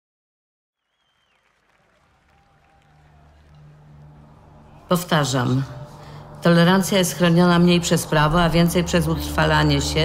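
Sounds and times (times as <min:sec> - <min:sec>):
low drone from sound system: 0:01.3 - 0:10.0.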